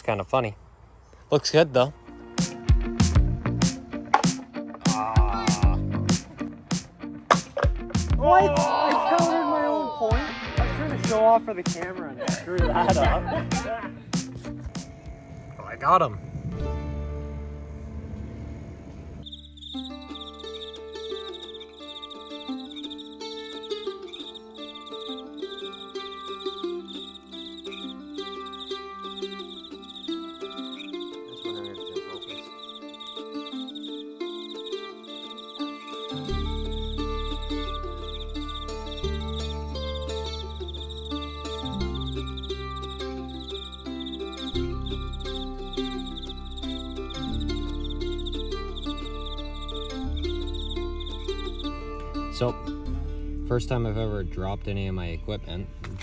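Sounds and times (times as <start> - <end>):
crickets chirping: 0.0 - 1.3, 17.4 - 52.7
background music: 1.6 - 56.0
deep bass line: 5.0 - 6.4, 10.4 - 11.3, 12.5 - 13.8.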